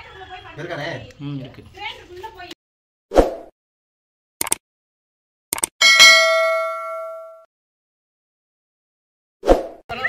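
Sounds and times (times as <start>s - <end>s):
bell chime ding: 5.8s - 7.5s.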